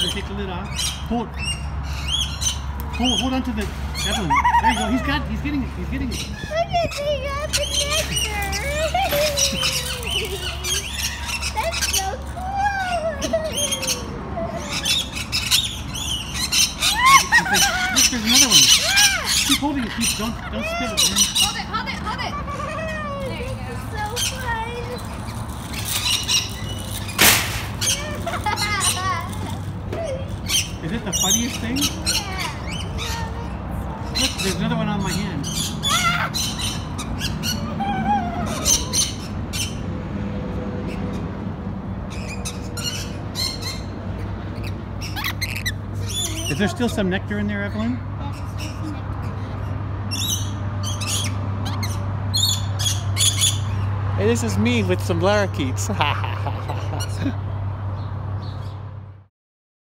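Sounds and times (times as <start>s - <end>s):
lorikeets chirping: 0.0s - 39.9s, 42.0s - 58.9s.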